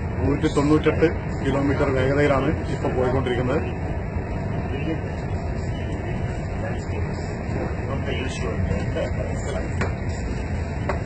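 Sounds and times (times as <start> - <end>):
train cabin rumble and hiss: 0.0 - 11.0.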